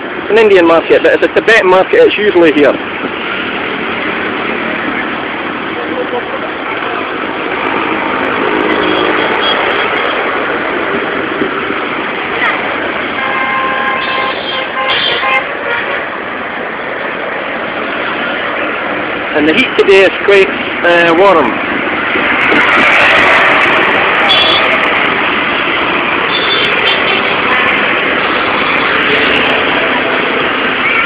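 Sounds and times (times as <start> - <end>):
heavy road traffic: 0.0 - 31.0
vehicle horn: 13.2 - 16.1, 24.2 - 24.8, 26.3 - 28.0.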